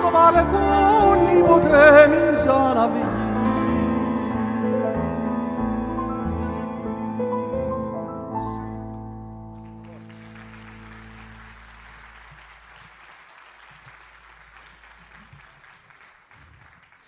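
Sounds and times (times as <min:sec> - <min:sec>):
band chord led by piano: 0:00.0 - 0:12.2
audience applause: 0:09.6 - 0:17.0.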